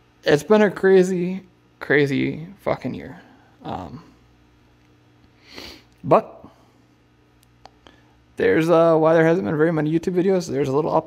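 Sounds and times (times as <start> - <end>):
faint steady hum: 0.0 - 11.0
man sniffing: 5.4 - 6.0.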